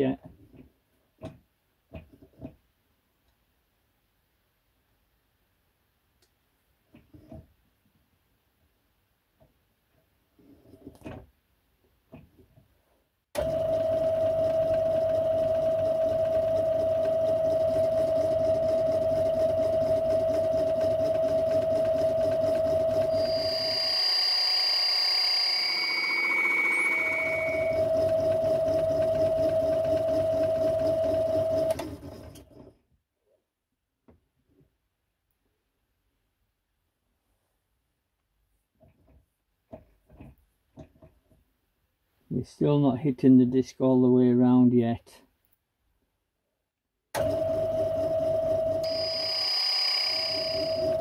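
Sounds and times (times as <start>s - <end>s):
lathe motor whine: 13.4s - 32.5s, 47.2s - 51.0s
tool squealing on copper: 23.0s - 27.9s, 48.8s - 51.0s.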